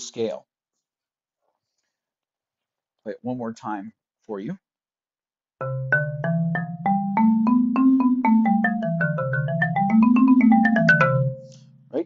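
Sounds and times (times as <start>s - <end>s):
marimba scale: 5.6s - 11.8s.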